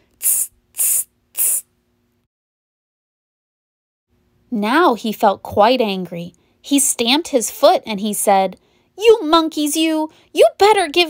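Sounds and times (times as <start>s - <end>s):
woman hissing through teeth: 0.1s - 1.7s.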